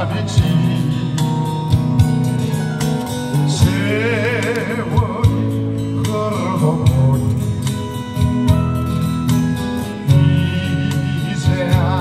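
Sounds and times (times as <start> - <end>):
man singing through pa: 0.0 - 2.0, 3.4 - 7.8, 9.9 - 12.0
band accompaniment with guitar: 0.0 - 12.0.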